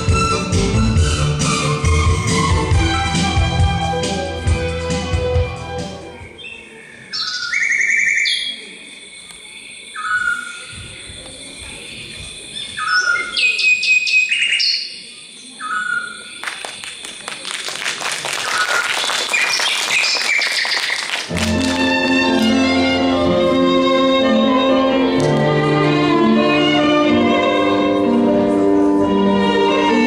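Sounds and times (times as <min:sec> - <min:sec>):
music: 0:00.0 - 0:06.3, 0:21.3 - 0:30.0
birds chirping and trilling: 0:06.2 - 0:16.4.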